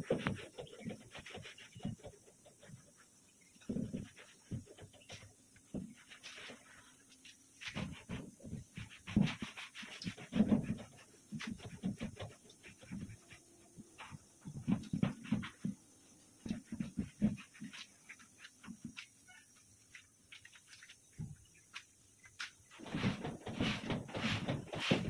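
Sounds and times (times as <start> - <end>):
swishing paint wiping strokes: 0.0 - 18.8, 22.8 - 25.0.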